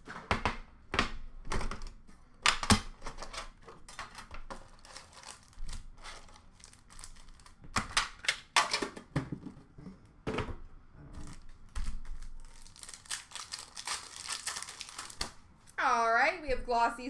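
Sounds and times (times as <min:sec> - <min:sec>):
card packs crinkling and tearing: 0:02.5 - 0:08.8, 0:11.2 - 0:15.5.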